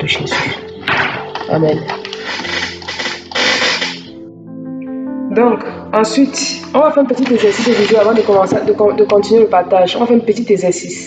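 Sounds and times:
loud rough noise: 0:02.2 - 0:04.1, 0:07.2 - 0:08.7.

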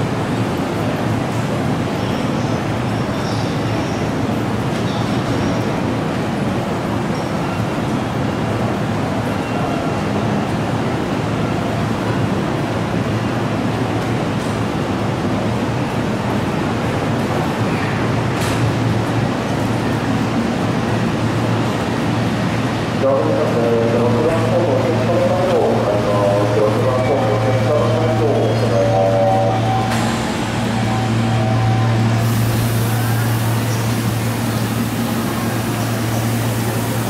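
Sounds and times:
crowded station background: 0:00.0 - 0:37.0
electric train rolling to a stop: 0:23.9 - 0:37.0.

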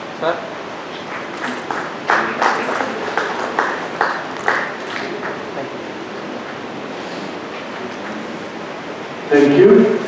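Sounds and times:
steady hiss: 0:00.0 - 0:10.0
audience clapping: 0:01.0 - 0:05.7.

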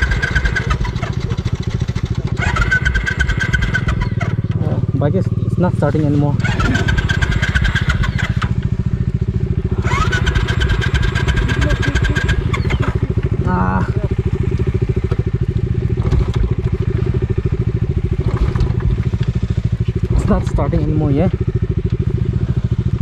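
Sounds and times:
motorcycle starter cranking: 0:00.0 - 0:04.8, 0:05.8 - 0:13.4, 0:14.2 - 0:20.9
motorcycle idling: 0:00.0 - 0:23.0.

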